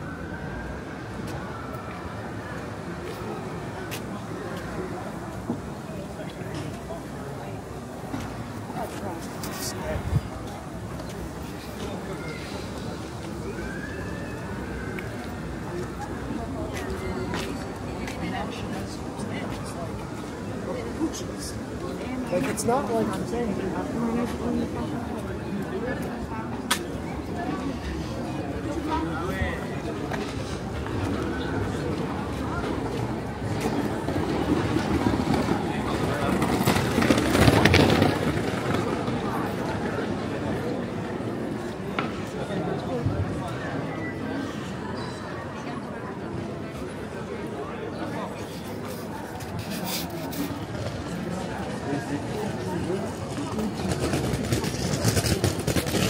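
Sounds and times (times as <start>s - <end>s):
distant siren: 0.0s - 3.2s
city background noise: 0.0s - 56.0s
murmur of voices: 0.0s - 56.0s
passers-by talking: 0.0s - 56.0s
traffic: 0.0s - 56.0s.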